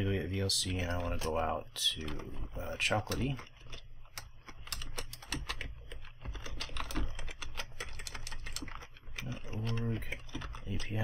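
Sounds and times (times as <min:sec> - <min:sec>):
keyboard typing: 0:00.6 - 0:11.0.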